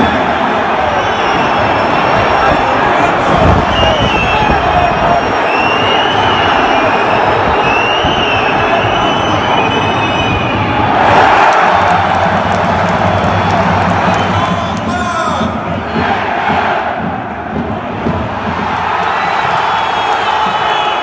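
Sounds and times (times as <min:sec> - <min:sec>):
high whistles: 0:00.0 - 0:02.7, 0:03.4 - 0:10.9, 0:12.9 - 0:14.8, 0:19.1 - 0:21.0
stadium crowd shouting: 0:00.0 - 0:21.0.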